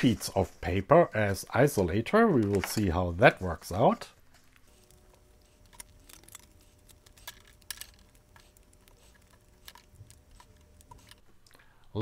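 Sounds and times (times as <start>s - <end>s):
faint clicks and rustles: 4.0s - 11.7s.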